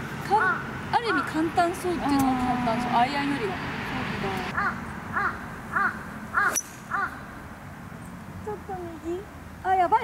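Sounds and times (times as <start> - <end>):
bird calling: 0.3 - 1.5, 4.4 - 7.4.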